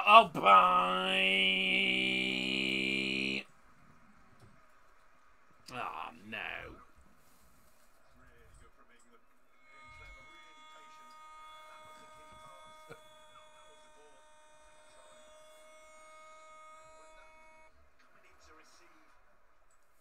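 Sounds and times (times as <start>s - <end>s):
faint buzzing tone: 9.5s - 18.2s.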